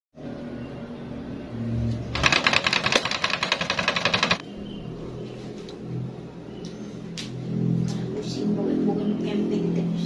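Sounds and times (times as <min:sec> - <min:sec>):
fan motor hum: 0:00.2 - 0:10.0
rapid even clattering: 0:02.1 - 0:04.4.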